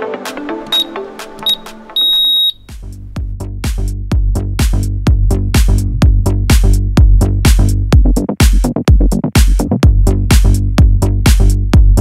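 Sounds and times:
timer beeps: 0.7 - 2.6.

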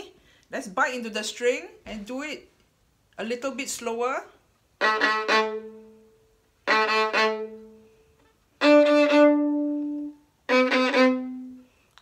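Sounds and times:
violin playing double stops: 8.6 - 11.6.

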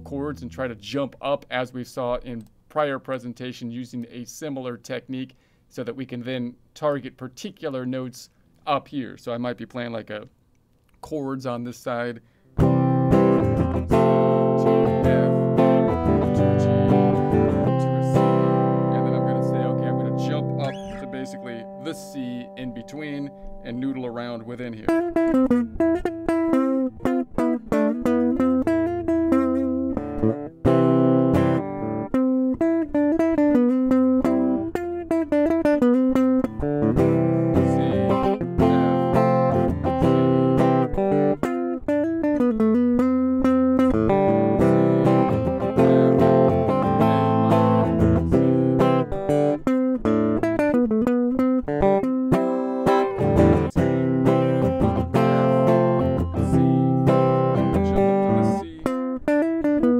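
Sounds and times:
electric guitar playing: 0.0 - 1.8, 12.6 - 59.9.

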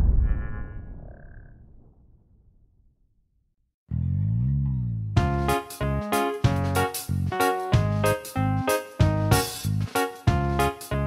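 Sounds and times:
low rumbling whoosh: 0.0 - 3.0.

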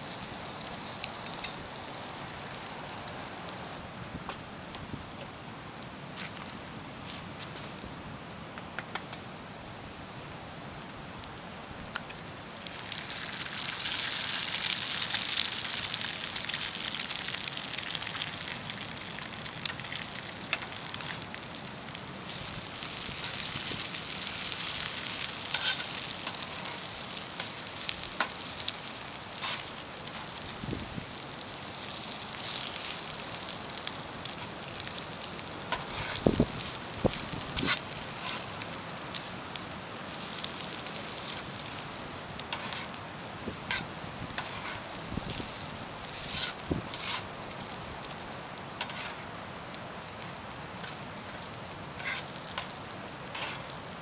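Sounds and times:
food sizzling on a griddle: 0.0 - 3.9, 11.9 - 54.0
metal spatula scraping and tapping: 48.8 - 49.2, 52.0 - 52.7.

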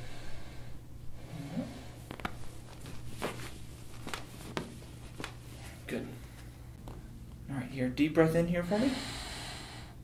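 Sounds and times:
patient breathing softly: 8.7 - 10.0.

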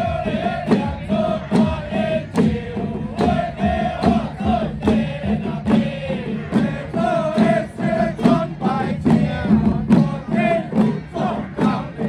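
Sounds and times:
hand drums beaten steadily: 0.0 - 12.0
men chanting in long notes: 0.0 - 12.0.

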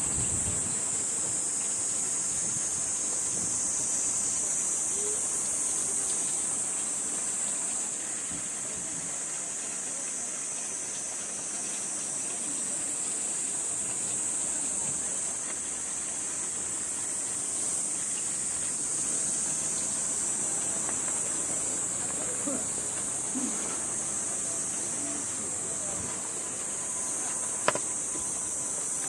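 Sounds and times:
cicada chorus buzzing: 0.0 - 29.0.

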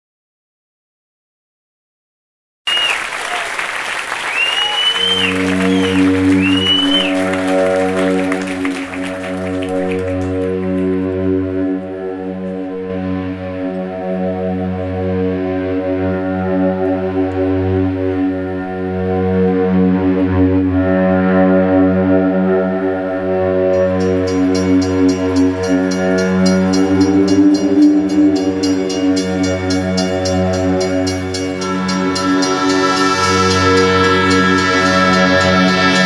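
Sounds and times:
droning held chord tones: 4.9 - 36.0
fast high ticking rhythm: 23.7 - 36.0.

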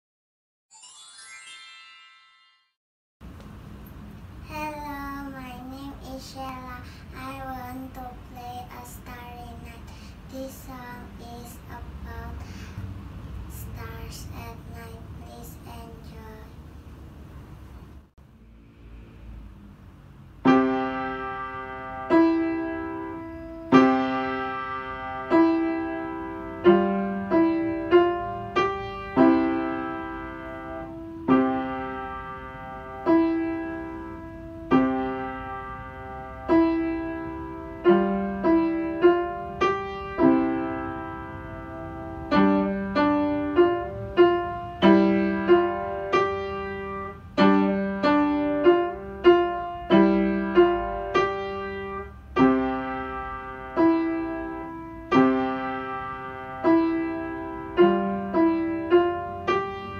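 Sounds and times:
upright piano slow melody: 0.7 - 4.5, 20.4 - 59.9.

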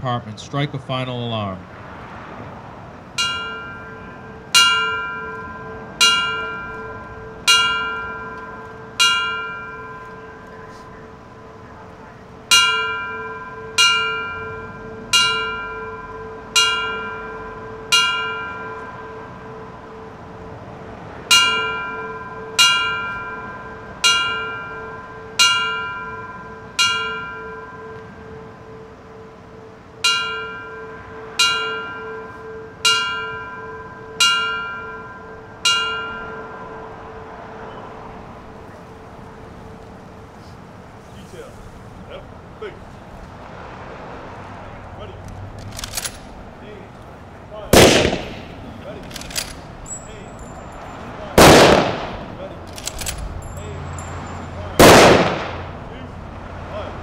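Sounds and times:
fire bell strokes ringing: 3.1 - 42.0, 48.6 - 51.4, 52.3 - 54.8.

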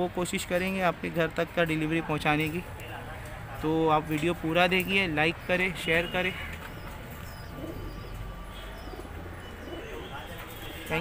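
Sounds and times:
pigeons cooing softly: 5.2 - 11.0.

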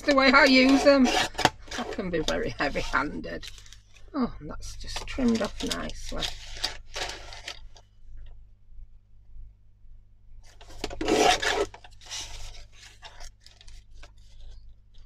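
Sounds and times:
paper rubbing and rustling: 0.1 - 4.0, 4.9 - 7.8, 10.4 - 15.0
paper trimmer slicing paper: 10.8 - 11.8.

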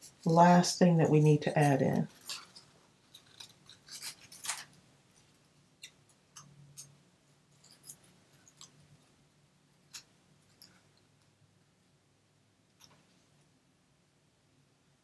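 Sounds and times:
small scissors snipping paper: 1.6 - 4.8.

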